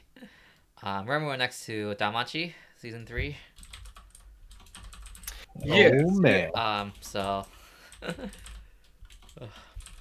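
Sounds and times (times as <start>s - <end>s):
typing on computer keyboard: 3.6s - 5.3s, 6.8s - 10.0s
person saying uh: 5.5s - 6.8s.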